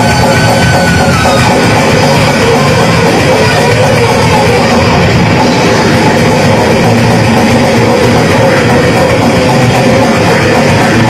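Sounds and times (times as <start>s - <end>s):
bass guitar: 0.0s - 11.0s
distorted electric guitars: 0.0s - 11.0s
drum kit: 0.0s - 11.0s.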